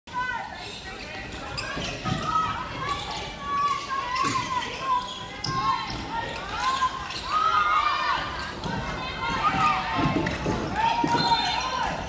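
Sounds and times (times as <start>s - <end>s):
shoe squeaks: 0.6s - 7.6s, 11.0s - 11.8s.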